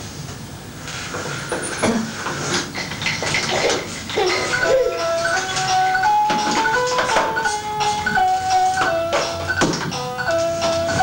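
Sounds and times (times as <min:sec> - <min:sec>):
electronic toy keyboard beeping notes: 0:04.2 - 0:11.0.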